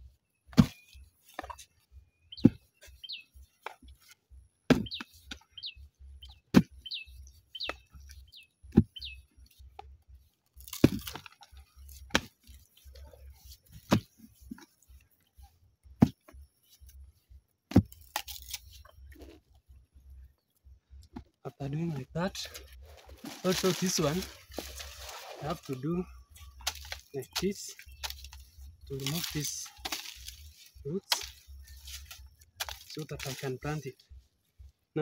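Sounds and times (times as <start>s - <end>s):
small bird chirping: 0.3s - 4.1s, 4.8s - 9.8s, 23.4s - 33.9s
hoe chopping into soil: 0.5s - 1.6s, 4.7s - 5.1s, 10.6s - 11.3s, 13.8s - 14.2s, 26.6s - 33.4s
scatter of loosened earth: 21.6s - 34.0s.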